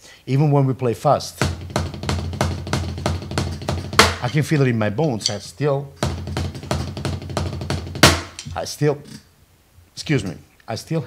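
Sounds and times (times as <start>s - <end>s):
drumsticks striking a drum: 1.4s - 8.6s.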